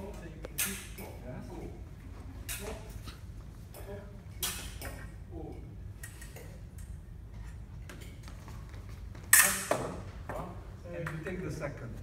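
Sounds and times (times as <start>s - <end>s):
low hum of hall: 0.0s - 12.0s.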